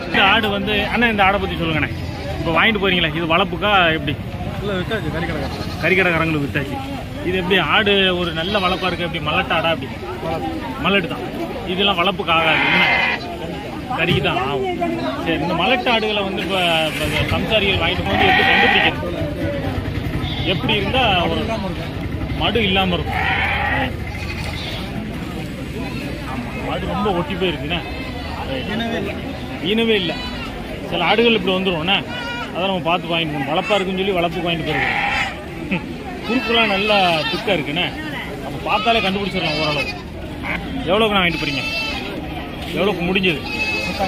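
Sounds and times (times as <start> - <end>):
people talking: 0.0 - 44.0
goat bleating: 5.2 - 6.3, 8.2 - 9.6, 12.2 - 13.4, 15.9 - 19.0, 20.0 - 25.0, 29.8 - 30.8, 32.0 - 32.7, 33.4 - 35.5, 36.2 - 42.3, 43.2 - 44.0.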